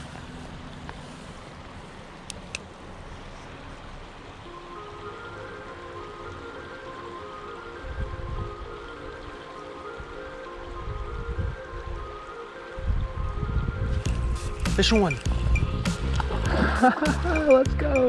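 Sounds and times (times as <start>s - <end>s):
creek water running: 0.0s - 11.2s, 14.0s - 18.0s
background music: 4.4s - 18.0s
wind on microphone: 7.8s - 9.0s, 9.9s - 16.7s.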